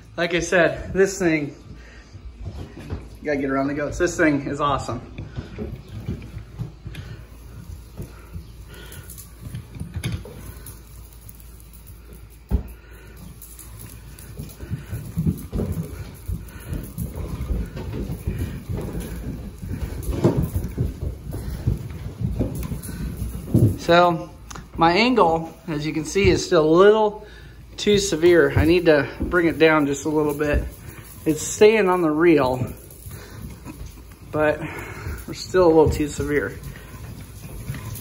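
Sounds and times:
fly reel rattling and crackling: 0:07.0 - 0:26.9, 0:27.8 - 0:38.0.

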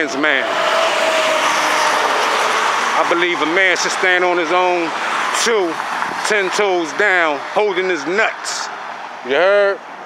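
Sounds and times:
traffic passing on street: 0:00.0 - 0:10.0
truck tyres and engine passing: 0:00.0 - 0:10.0.

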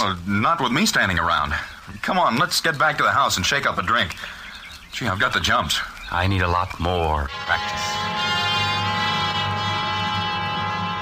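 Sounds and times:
orchestral brass chord: 0:07.3 - 0:11.0.

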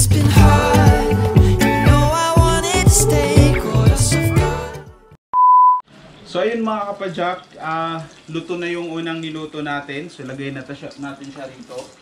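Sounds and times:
background music with a beat: 0:00.0 - 0:05.1.

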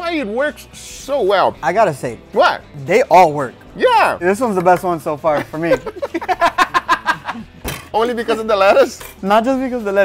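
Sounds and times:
men laughing: 0:05.2 - 0:09.0.

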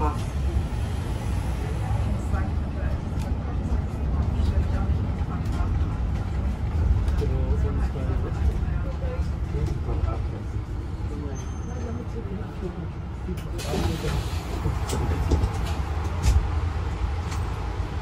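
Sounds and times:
bus rumbling: 0:00.0 - 0:18.0.

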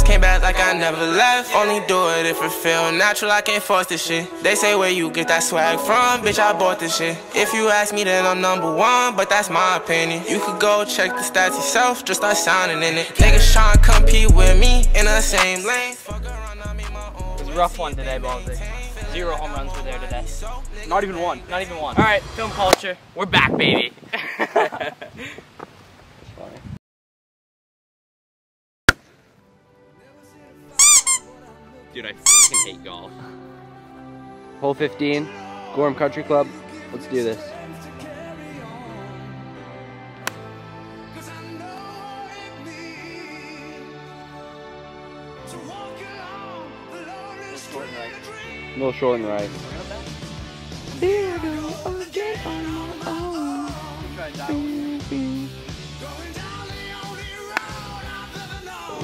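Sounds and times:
faint background music: 0:00.0 - 0:22.8, 0:29.4 - 0:59.0
high double squeak: 0:30.8 - 0:31.2, 0:32.3 - 0:32.7.

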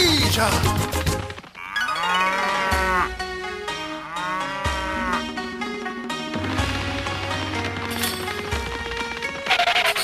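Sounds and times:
light background music: 0:00.0 - 0:10.0
cartoon cattle mooing: 0:01.6 - 0:05.4.

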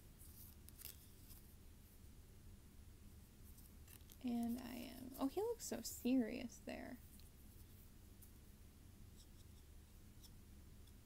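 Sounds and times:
cards brushing together: 0:00.2 - 0:01.5.

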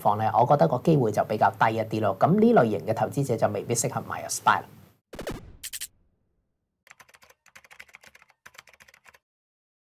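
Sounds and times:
rapid keyboard typing clicks: 0:06.9 - 0:09.2.

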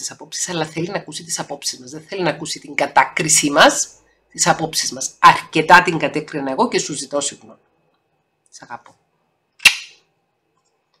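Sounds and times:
sharp smack: 0:09.6 - 0:10.0.

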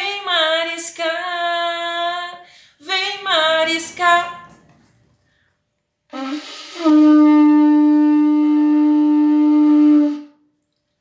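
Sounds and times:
conch shell trumpet blown: 0:06.1 - 0:10.6.

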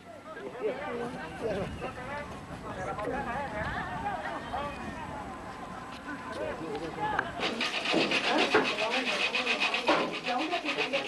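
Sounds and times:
bread rasping on a grater: 0:07.4 - 0:11.0.

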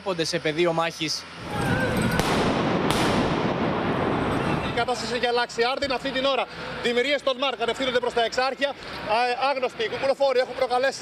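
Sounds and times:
steady rush of loud noise: 0:00.0 - 0:11.0
stun grenade bangs: 0:01.6 - 0:04.8.

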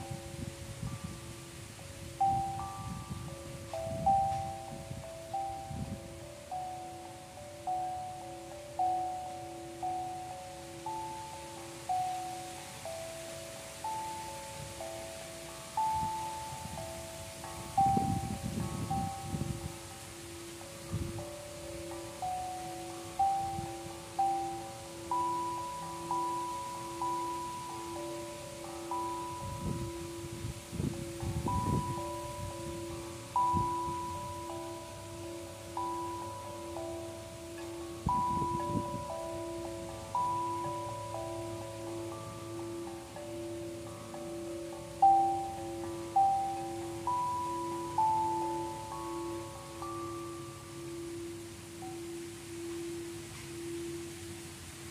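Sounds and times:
wind gusts on microphone: 0:00.0 - 0:07.9, 0:09.8 - 0:41.6
wavering hum: 0:00.0 - 0:54.9
sound bowls struck with mallet: 0:07.5 - 0:54.9.

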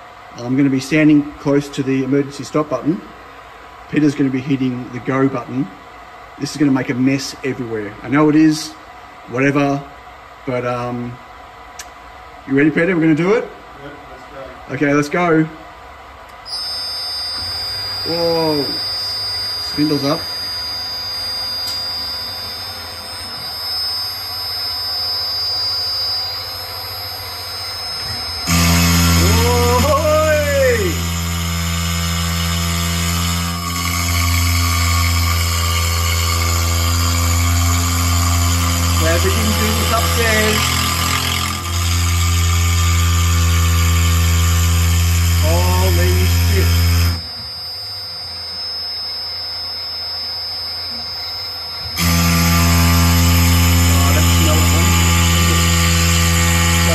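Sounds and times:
mill spindle whining: 0:16.3 - 0:56.9
table motor whine: 0:16.3 - 0:56.9
end mill cutting plastic: 0:16.4 - 0:47.6, 0:51.7 - 0:56.9.

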